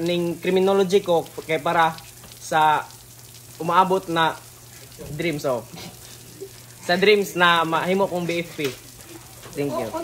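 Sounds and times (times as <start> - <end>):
young man speaking: 9.6 - 10.0.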